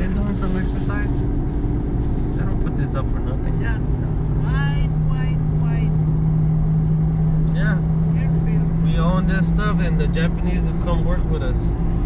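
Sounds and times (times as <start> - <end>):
car engine drone: 0.0 - 12.0
road rumble: 0.0 - 12.0.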